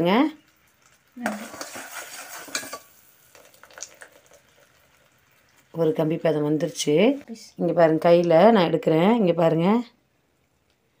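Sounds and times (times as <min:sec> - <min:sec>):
ladle clinking: 0:00.8 - 0:05.2
ladle scraping metal pot: 0:01.3 - 0:02.9.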